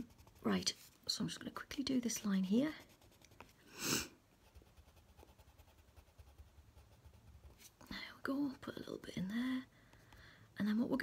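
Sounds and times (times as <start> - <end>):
pencil scratching on paper: 0.0 - 1.0, 2.0 - 3.6, 4.3 - 7.7
breath close to microphone: 9.7 - 10.5.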